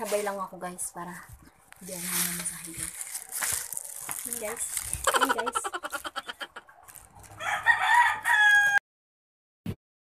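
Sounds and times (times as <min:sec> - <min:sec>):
rooster crowing: 0:07.3 - 0:08.8.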